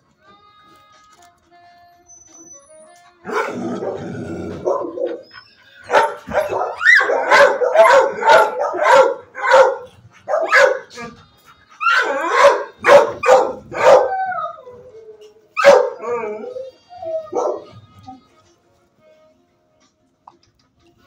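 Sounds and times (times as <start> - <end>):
dog barking: 3.3 - 5.2, 5.8 - 11.0, 11.8 - 14.2, 15.6 - 16.1, 17.3 - 17.7.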